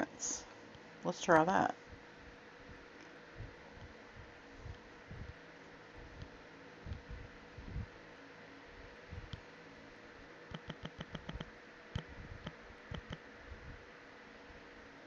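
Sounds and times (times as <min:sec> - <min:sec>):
steady low hiss: 0:00.0 - 0:15.0
fingers tapping touchscreen: 0:10.5 - 0:13.2.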